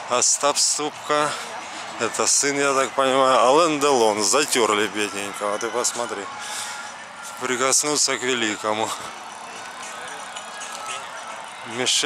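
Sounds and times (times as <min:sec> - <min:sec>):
distant traffic: 0:00.0 - 0:12.0
steady outdoor hiss: 0:00.0 - 0:12.0.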